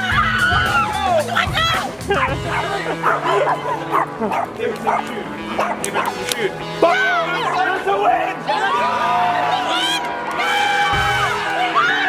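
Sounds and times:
background music: 0:00.0 - 0:12.0
people cheering and shouting: 0:00.0 - 0:12.0.

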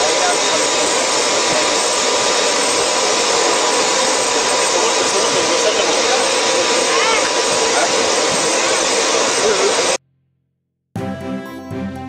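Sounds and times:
faint voices: 0:00.0 - 0:10.0
jet engine rushing: 0:00.0 - 0:10.0.

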